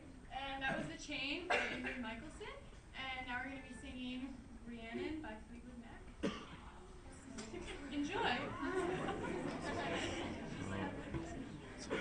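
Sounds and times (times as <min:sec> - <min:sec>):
indistinct chatter of voices: 0:06.5 - 0:12.0.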